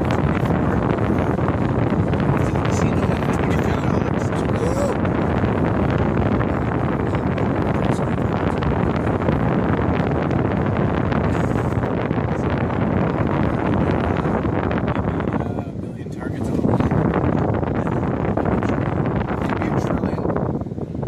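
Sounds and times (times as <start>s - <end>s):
car road and cabin rumble: 0.0s - 21.0s
wind buffeting microphone: 0.0s - 21.0s.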